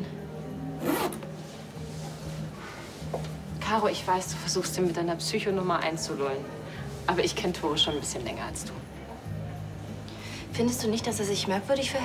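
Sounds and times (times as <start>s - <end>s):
low background music tone: 0.0s - 12.0s.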